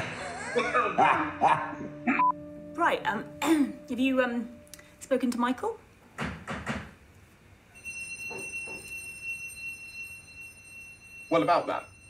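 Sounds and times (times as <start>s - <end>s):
doorbell electronic tone: 7.8s - 12.0s.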